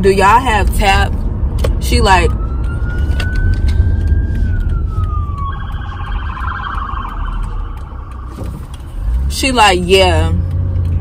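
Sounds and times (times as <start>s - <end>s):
car road rumble: 0.0s - 11.0s
emergency siren wailing and yelping: 2.0s - 9.1s.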